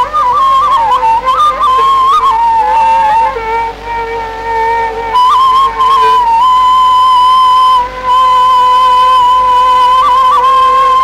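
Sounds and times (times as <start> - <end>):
bamboo flute long note: 0.0 - 11.0.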